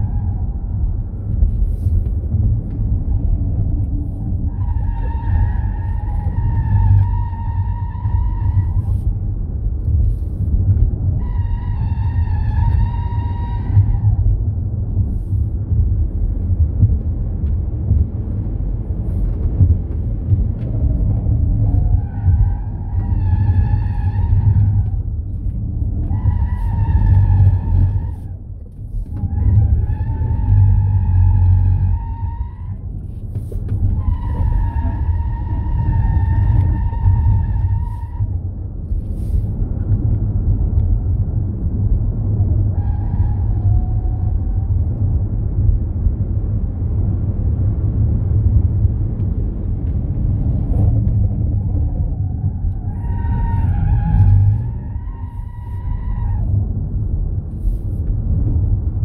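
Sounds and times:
low road and wind rumble: 0:00.0 - 0:59.0.

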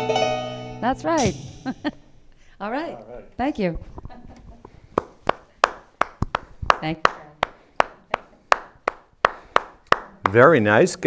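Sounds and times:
hand claps: 0:05.0 - 0:10.4.

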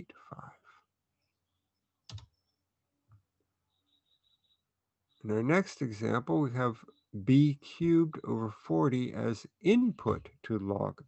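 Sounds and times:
stylus clicking on pen tablet: 0:02.0 - 0:03.2.

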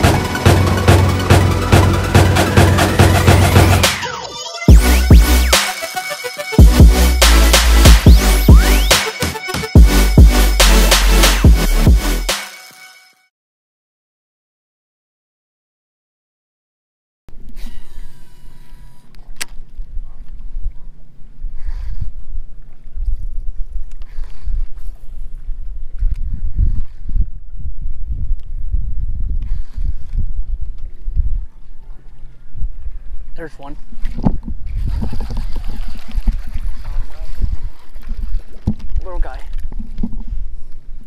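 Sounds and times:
wind buffeting microphone: 0:19.6 - 0:41.0
water lapping against boat: 0:34.1 - 0:40.4.

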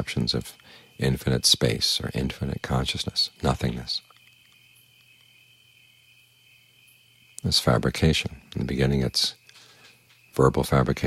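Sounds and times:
crickets chirring: 0:00.0 - 0:11.0
faint low hum: 0:00.0 - 0:11.0.

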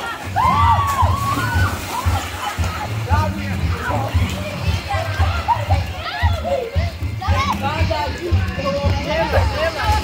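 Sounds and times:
children shouting and chattering: 0:00.0 - 0:10.0
loud music with bass beat: 0:00.3 - 0:10.0.

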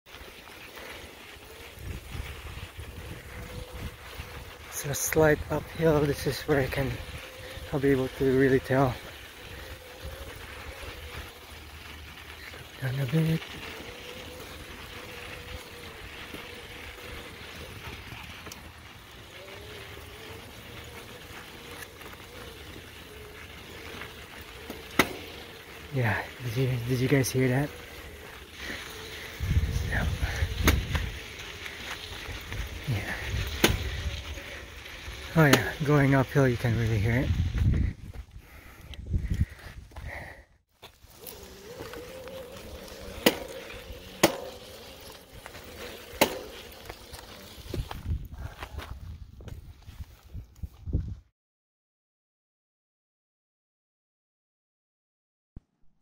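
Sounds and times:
tyre rumble on dirt trail: 0:00.1 - 0:51.3
electric motor whine: 0:01.0 - 0:36.0, 0:40.9 - 0:48.1
wind buffeting microphone: 0:01.4 - 0:08.2, 0:28.1 - 0:40.2, 0:46.9 - 0:51.3.

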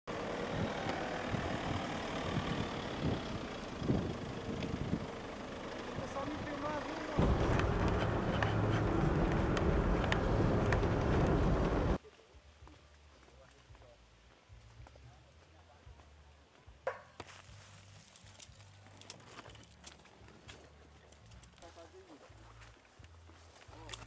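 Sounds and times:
vehicle engine low rumble: 0:00.1 - 0:12.0.

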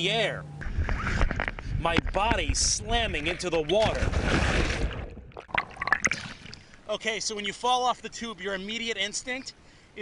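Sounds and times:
person splashing into water: 0:03.9 - 0:06.8
underwater bubbling pops: 0:04.6 - 0:06.8.

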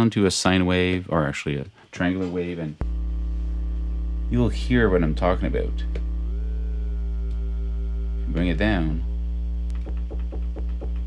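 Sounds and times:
low buzzy synthesizer note pulsing: 0:02.8 - 0:11.0.

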